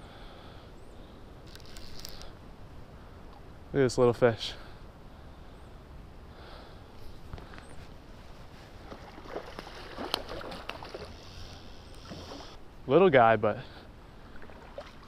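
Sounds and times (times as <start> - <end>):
creek water sloshing and splashing: 8.2 - 12.6, 14.2 - 15.0.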